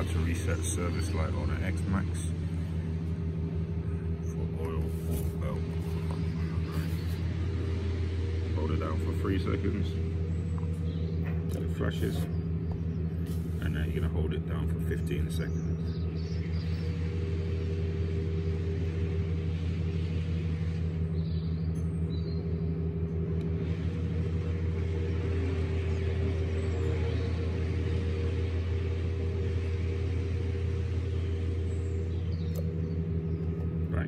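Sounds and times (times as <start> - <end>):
scooter engine idling: 0.0 - 34.0.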